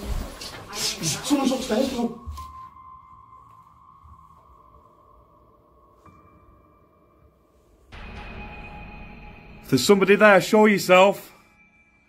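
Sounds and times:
faint sustained electronic tone: 1.0 - 12.0.

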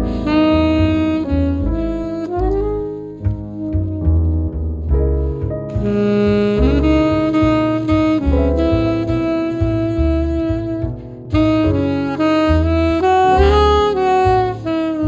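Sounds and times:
saxophone jazz ballad: 0.0 - 15.0
walking bass line: 0.0 - 15.0.

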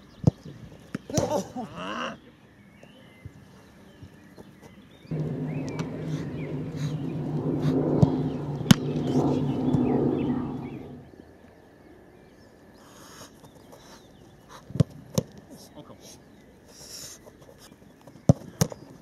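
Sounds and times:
motor engine humming: 5.1 - 11.1.

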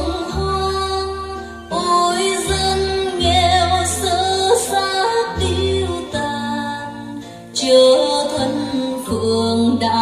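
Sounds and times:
woman singing long held notes: 0.0 - 10.0.

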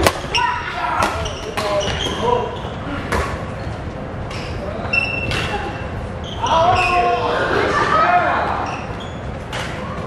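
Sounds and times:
shoes squeaking on wooden floor: 8.6 - 9.5.

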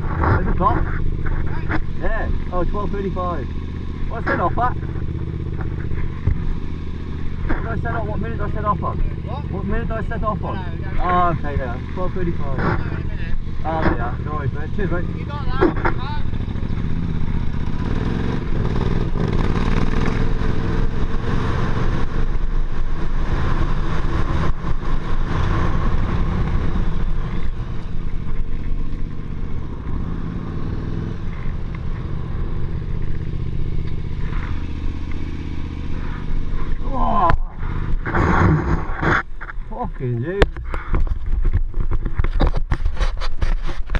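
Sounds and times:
motorcycle engine at low revs: 0.0 - 43.9.

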